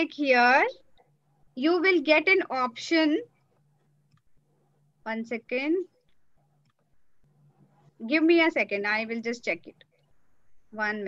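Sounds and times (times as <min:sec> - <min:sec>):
woman speaking: 0:00.0 - 0:00.8, 0:01.6 - 0:03.3, 0:05.1 - 0:05.9, 0:08.0 - 0:09.8, 0:10.7 - 0:11.0
faint low hum: 0:00.0 - 0:11.0.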